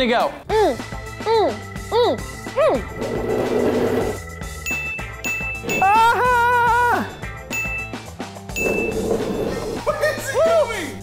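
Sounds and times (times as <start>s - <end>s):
background music: 0.0s - 11.0s
bright electronic ding: 7.5s - 8.0s.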